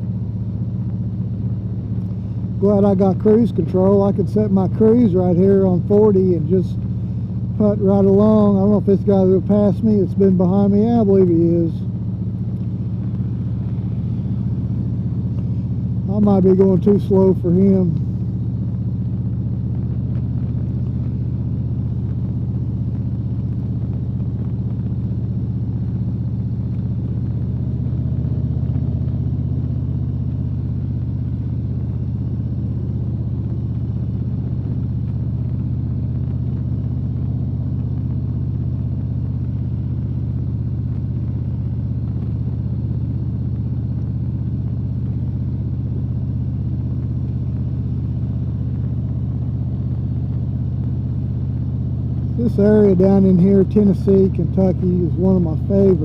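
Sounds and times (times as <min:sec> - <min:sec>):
motorcycle engine cruising: 0:00.0 - 0:56.0
wind and road noise: 0:00.0 - 0:56.0.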